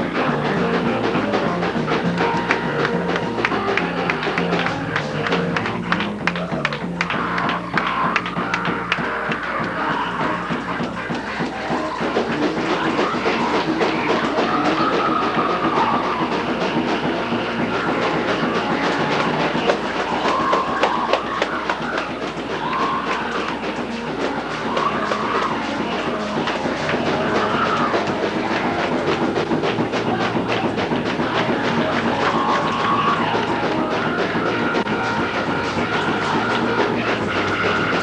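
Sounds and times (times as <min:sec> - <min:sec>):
rapid percussive claps: 0:00.0 - 0:38.0
up-tempo church praise music: 0:00.0 - 0:38.0
wavering raised voices: 0:00.0 - 0:38.0.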